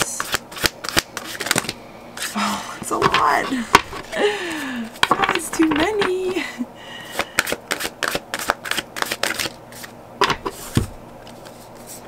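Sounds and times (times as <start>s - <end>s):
cards being shuffled: 0.1s - 2.4s, 7.1s - 12.0s.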